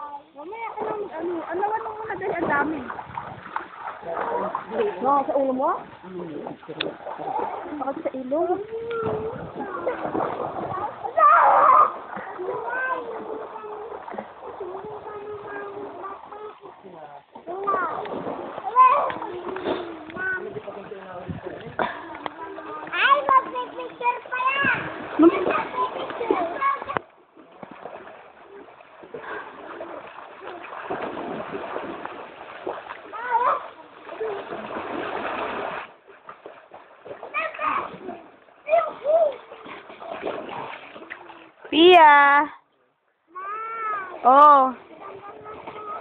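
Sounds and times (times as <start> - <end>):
river water splashing: 0.0 - 42.3, 44.0 - 46.0
child shouting high-pitched: 11.2 - 12.0, 43.4 - 44.2.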